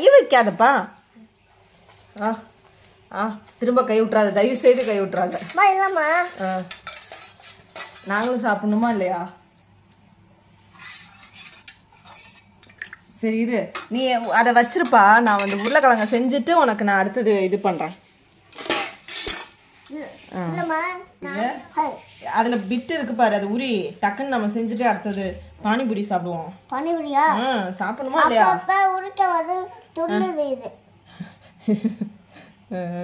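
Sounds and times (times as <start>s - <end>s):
metal spoon scraping steel bowl: 4.6s - 8.5s, 10.7s - 12.6s, 13.7s - 16.5s, 18.5s - 19.6s
metal spoon clinking against pot: 6.2s - 8.4s, 13.7s - 16.2s
person talking: 27.1s - 30.7s.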